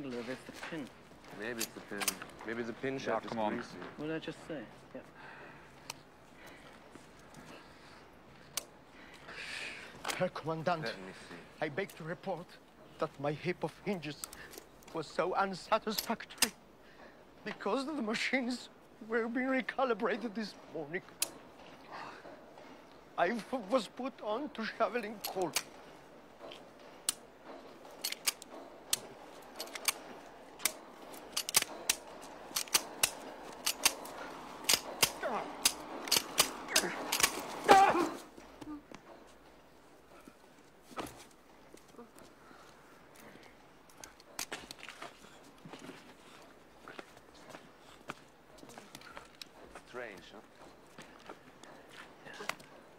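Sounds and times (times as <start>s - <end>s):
quiet outdoor ambience: 0.0s - 52.9s
pistol metallic clicks: 15.9s - 16.6s, 25.2s - 25.8s, 28.0s - 37.5s.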